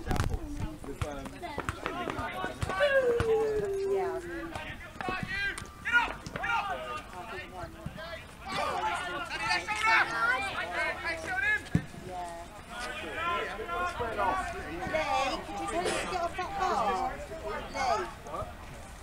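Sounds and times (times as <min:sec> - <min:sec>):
footballers shouting: 0:01.5 - 0:11.8, 0:12.6 - 0:18.6.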